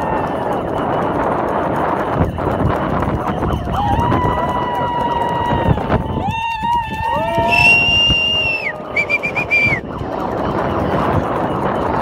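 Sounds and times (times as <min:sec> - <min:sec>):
whistle blasts: 0:07.0 - 0:10.1.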